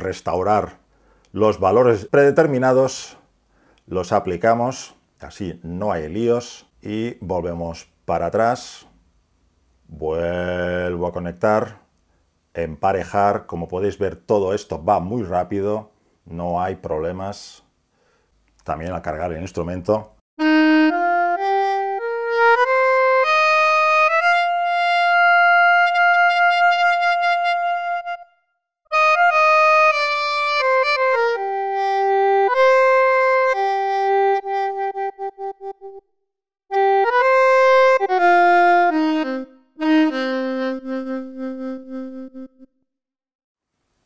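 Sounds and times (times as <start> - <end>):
digital saxophone melody: 20.4 - 36.1, 36.7 - 42.8.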